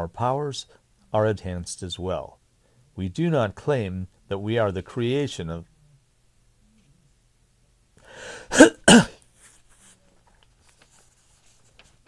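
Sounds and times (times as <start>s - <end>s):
breath in: 8.0s - 8.6s
man coughing: 8.4s - 9.2s.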